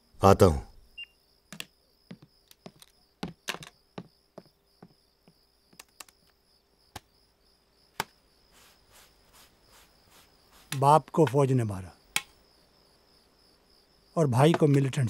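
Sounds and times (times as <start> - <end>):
crickets trilling: 0.0 - 15.0
small objects clicking and tapping: 1.5 - 3.8, 5.7 - 6.4.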